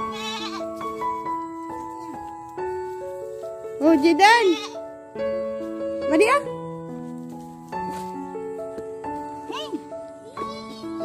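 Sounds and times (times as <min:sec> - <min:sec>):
goat bleating: 0:00.0 - 0:01.3, 0:04.3 - 0:04.8
gentle piano music: 0:00.0 - 0:11.0.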